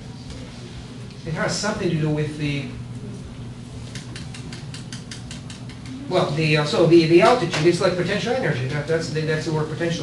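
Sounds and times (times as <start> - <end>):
rapid light mechanical clicks: 3.9 - 6.0.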